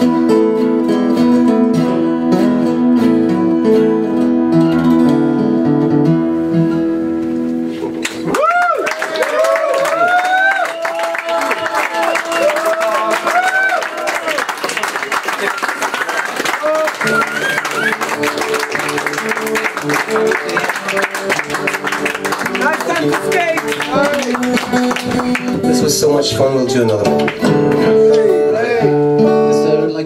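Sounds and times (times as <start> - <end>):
acoustic guitars strummed: 0.0 - 8.3, 16.9 - 30.0.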